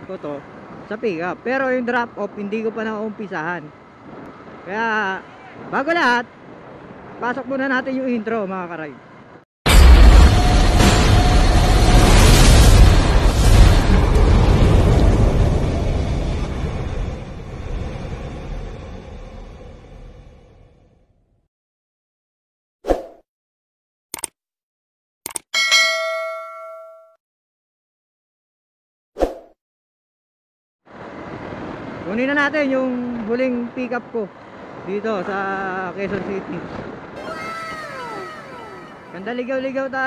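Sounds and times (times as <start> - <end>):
fire blast rushing noise: 9.7 - 18.9
bright bell ding: 25.6 - 27.2
faint held tone: 25.7 - 27.2.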